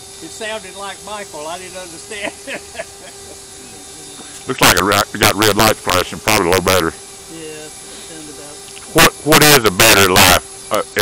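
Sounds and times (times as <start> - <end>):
distant man talking: 4.4 - 7.0.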